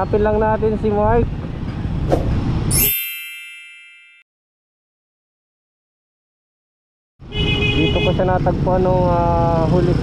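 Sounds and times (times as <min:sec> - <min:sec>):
bell-like ding: 0:02.7 - 0:04.3.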